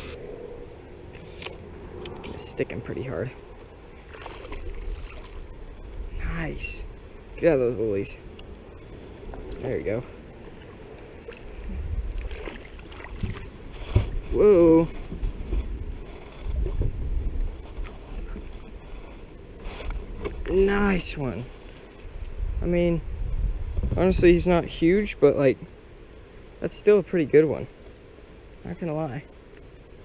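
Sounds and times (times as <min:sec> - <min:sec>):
wind buffeting microphone: 0:00.0 - 0:19.1, 0:19.9 - 0:25.2
water around kayak: 0:00.0 - 0:30.0.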